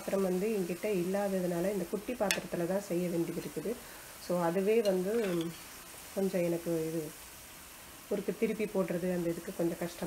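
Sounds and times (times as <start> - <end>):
food deep-frying in hot oil: 0.0 - 10.0
person speaking: 4.6 - 5.7.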